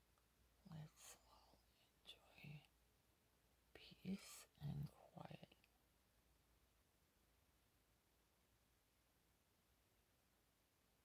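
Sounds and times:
person speaking softly: 0:00.6 - 0:02.8, 0:03.8 - 0:05.8.

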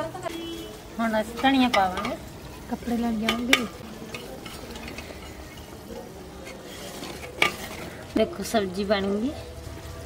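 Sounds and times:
low hiss from pot and fire: 0:00.0 - 0:10.0
ladle stirring curry in a pot: 0:00.2 - 0:10.0
metal ladle clinking against pot: 0:01.2 - 0:08.0.

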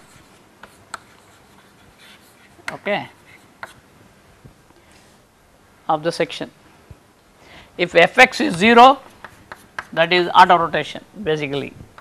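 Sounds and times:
chalk scratching on blackboard: 0:00.0 - 0:03.8, 0:09.0 - 0:10.0
chalk tapping: 0:00.0 - 0:03.8, 0:08.4 - 0:10.0.

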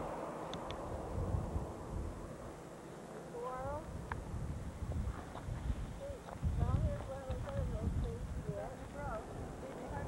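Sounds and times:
wind rumble on microphone: 0:00.0 - 0:02.6, 0:03.5 - 0:10.0.

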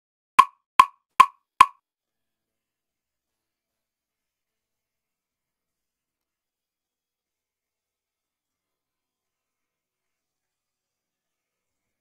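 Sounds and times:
count-in clicks: 0:00.4 - 0:01.3.

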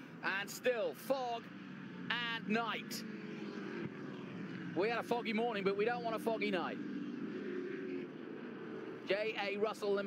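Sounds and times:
racing car engines passing: 0:00.0 - 0:10.0.

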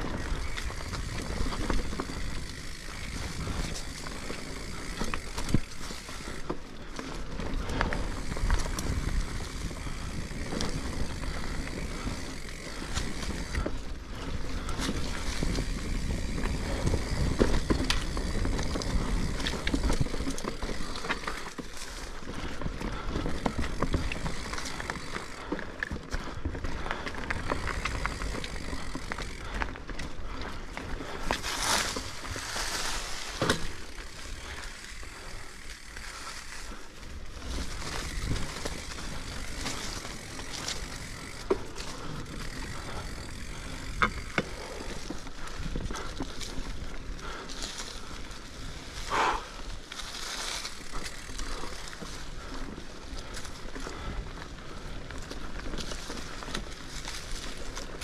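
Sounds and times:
bike rattles and clicks: 0:00.0 - 0:58.0
bike tyre rumble on dirt: 0:00.0 - 0:58.0.

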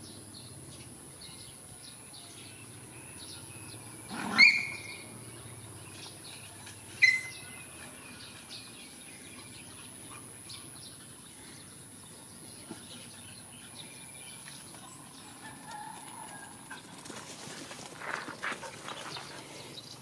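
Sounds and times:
loud high bird calls: 0:03.1 - 0:05.2, 0:06.9 - 0:08.4.

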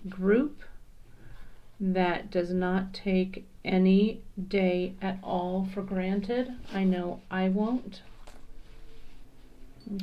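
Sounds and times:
low room hum: 0:00.0 - 0:10.0
leather cord rustling: 0:08.0 - 0:09.3.

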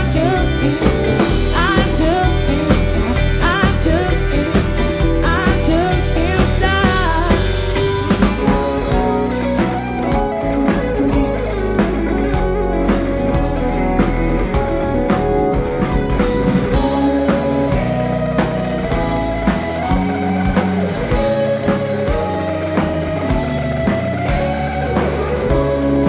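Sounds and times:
electric guitar bent lead notes: 0:00.0 - 0:26.0
live rock band: 0:00.0 - 0:26.0.

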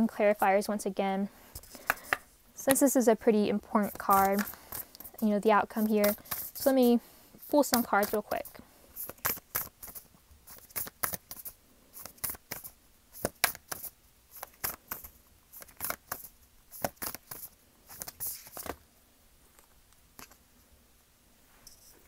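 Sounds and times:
cards being shuffled: 0:01.6 - 0:02.8, 0:03.8 - 0:06.8, 0:07.4 - 0:18.8, 0:20.2 - 0:20.4.

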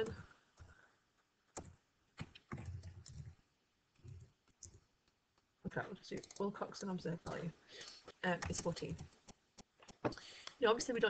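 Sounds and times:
keyboard and mouse clicks: 0:01.5 - 0:03.4, 0:04.0 - 0:05.2, 0:06.1 - 0:06.6, 0:08.3 - 0:10.6.

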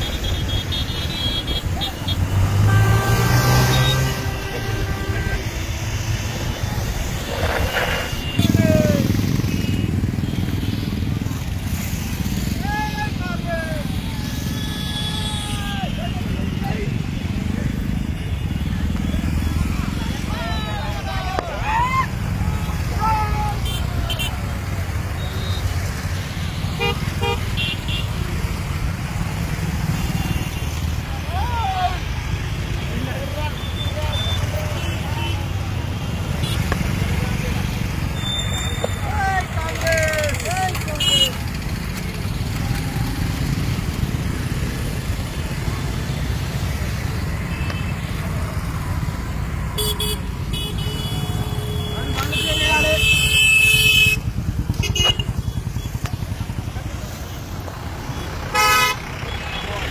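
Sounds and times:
car horns tooting: 0:00.0 - 0:10.9, 0:22.6 - 0:28.5, 0:37.8 - 0:41.5, 0:49.7 - 0:56.0, 0:58.1 - 0:59.9
vehicle engines rumbling: 0:00.0 - 0:59.9
people shouting: 0:08.2 - 0:09.1, 0:12.5 - 0:16.4, 0:19.8 - 0:24.6, 0:31.1 - 0:32.2.

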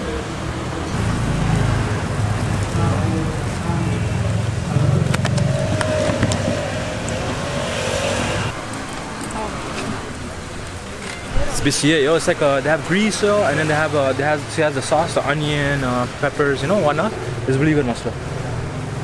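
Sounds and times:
indistinct voices: 0:00.0 - 0:08.6
low rumble of passing traffic: 0:00.0 - 0:19.0.

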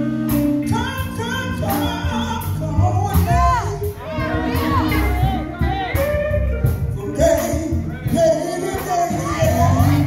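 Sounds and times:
low steady bass: 0:00.0 - 0:10.0
male gospel group singing: 0:00.0 - 0:10.0.

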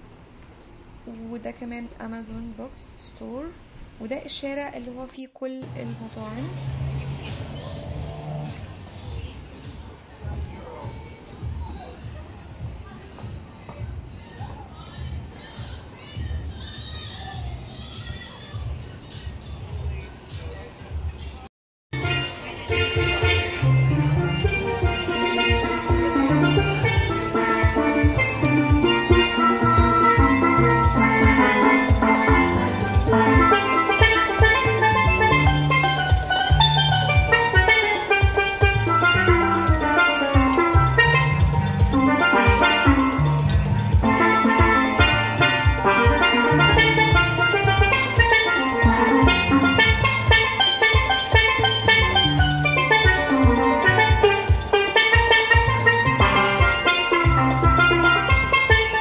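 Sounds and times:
steelpan melody: 0:05.6 - 0:12.0, 0:22.0 - 0:59.0
bass: 0:05.6 - 0:59.0
drum beat: 0:22.0 - 0:59.0.

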